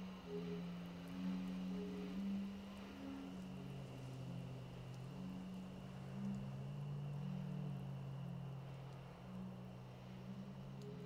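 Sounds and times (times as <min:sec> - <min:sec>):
low synth drone: 0:00.0 - 0:11.0.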